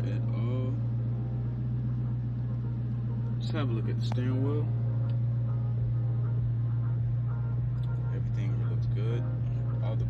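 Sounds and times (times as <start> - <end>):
car engine idling hum: 0.0 - 10.0.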